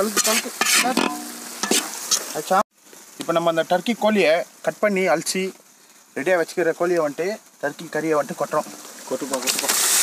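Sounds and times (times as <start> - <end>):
ladle scraping a pan: 0.0 - 2.2
onions sizzling in a pan: 0.0 - 10.0.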